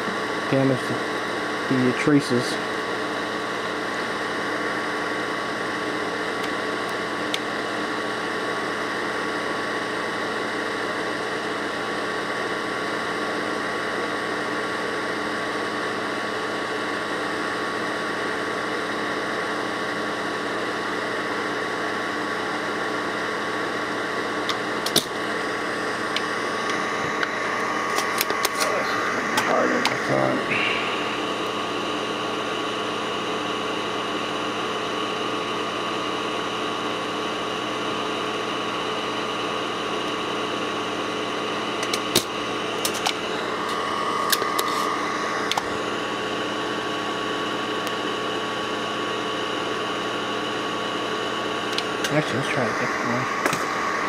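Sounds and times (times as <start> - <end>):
steady electric hum: 0.0 - 54.0
sharp snap: 24.5 - 25.1, 41.8 - 43.2.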